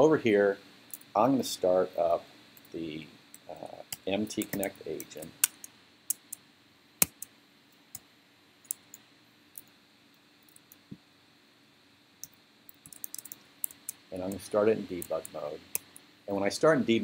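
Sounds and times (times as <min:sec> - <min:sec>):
typing on computer keyboard: 0:12.8 - 0:14.4.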